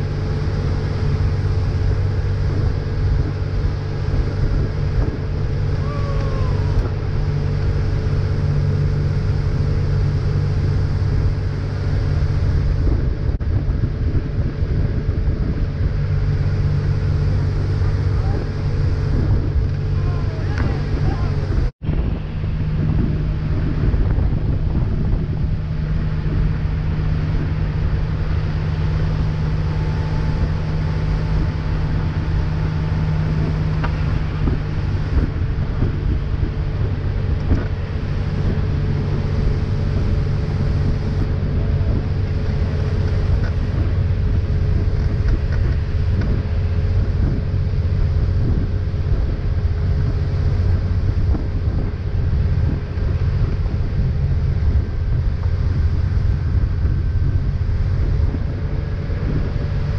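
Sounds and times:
motorboat engine running: 0.0s - 59.9s
water rushing in wake: 0.0s - 59.9s
wind on microphone: 0.0s - 59.9s.

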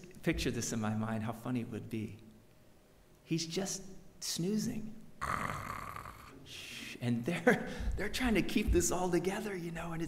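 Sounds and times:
man fake snoring: 5.2s - 6.4s.

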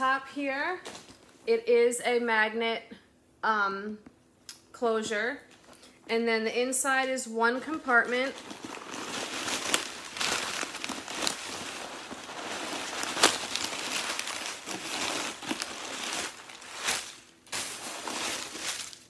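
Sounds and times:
paper rustling and crinkling: 7.7s - 19.0s.

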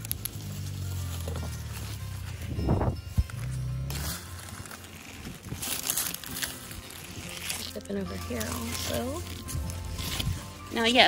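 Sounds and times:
leaves rustling and crinkling: 0.0s - 11.0s.

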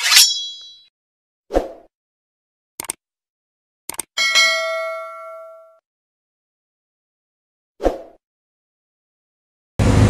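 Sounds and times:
bright metallic clang: 0.0s - 0.9s.

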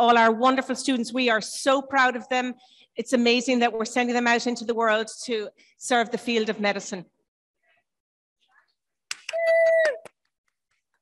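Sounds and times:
hand claps: 9.1s - 11.0s
person cheering: 9.3s - 10.2s.

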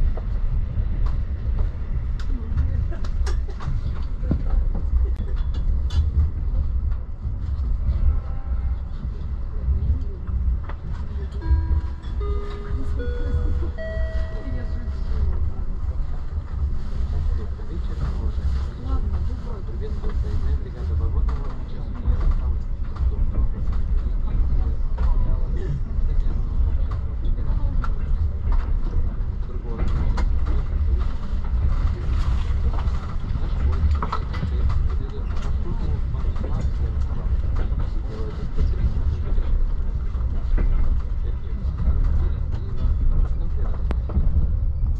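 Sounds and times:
train low rumble: 0.0s - 44.9s.

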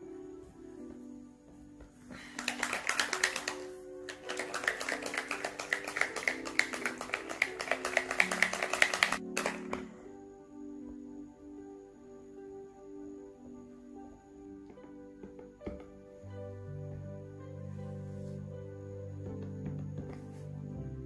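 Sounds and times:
soft background music: 0.0s - 21.0s
correction pen ball rattling: 2.4s - 9.8s.

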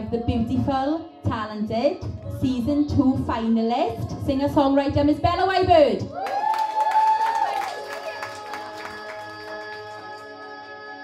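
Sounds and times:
hand claps: 6.2s - 10.4s.

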